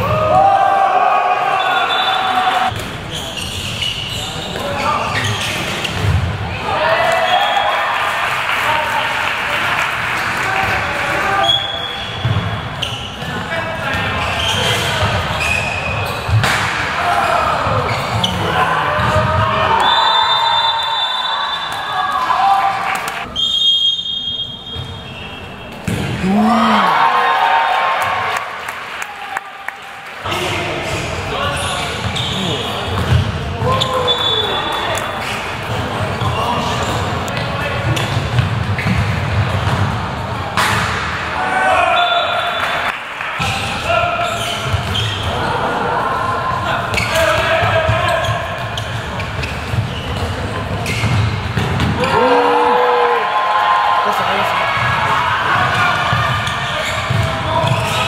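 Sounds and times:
referee's whistle: 1.6 - 2.7, 11.4 - 13.0, 19.8 - 21.9, 23.3 - 25.8, 33.9 - 34.8
people shouting: 26.0 - 27.9, 52.0 - 56.0
ball bouncing on court: 33.0 - 33.4.

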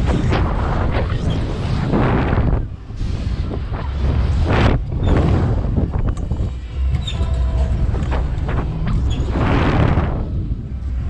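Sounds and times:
air rushing over microphone: 0.0 - 6.5, 8.2 - 11.0.

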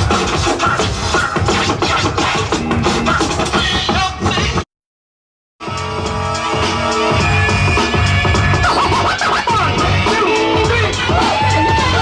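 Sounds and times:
hip-hop beat: 0.0 - 4.6, 5.6 - 12.0
vinyl record scratching: 0.0 - 4.6, 6.4 - 12.0.

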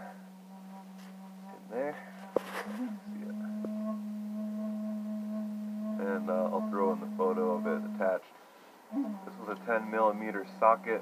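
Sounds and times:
higher steady tone: 0.0 - 8.2, 8.9 - 11.0
steady low hum: 0.0 - 11.0
brief rustle: 2.2 - 2.9.

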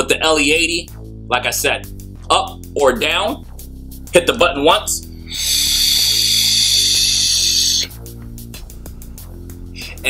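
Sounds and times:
background music: 0.0 - 10.0
vape coil sizzling hiss: 5.2 - 7.9.

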